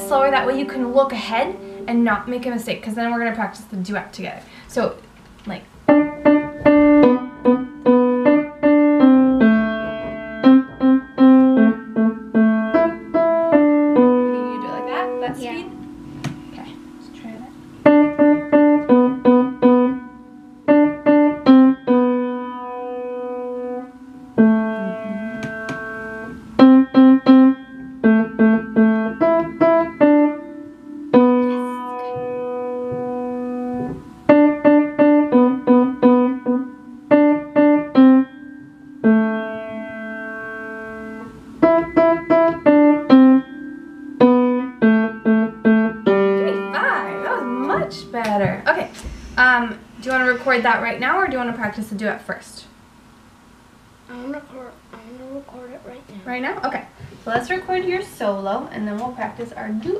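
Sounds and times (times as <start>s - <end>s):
beginner piano piece: 0.0s - 52.8s, 54.0s - 59.9s.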